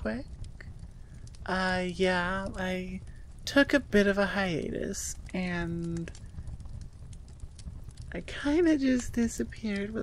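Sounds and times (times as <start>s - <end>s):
faint irregular clicks: 0.0s - 10.0s
microphone room rumble: 0.0s - 10.0s.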